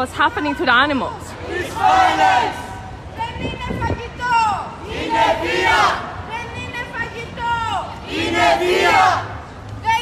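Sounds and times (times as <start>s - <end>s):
protesters chanting: 1.2s - 3.1s, 4.6s - 6.7s, 7.6s - 10.0s.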